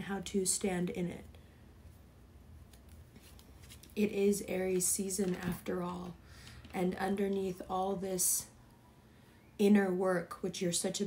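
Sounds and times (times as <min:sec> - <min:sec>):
tarot cards rustling and clicking: 0:02.6 - 0:06.9.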